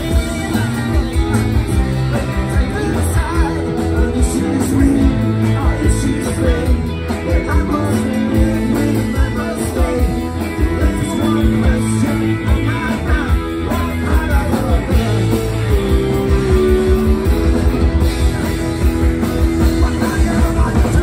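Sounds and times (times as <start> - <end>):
person singing: 0.0 - 17.8, 19.4 - 21.0
drums beating: 0.0 - 21.0
electric guitar: 0.0 - 21.0.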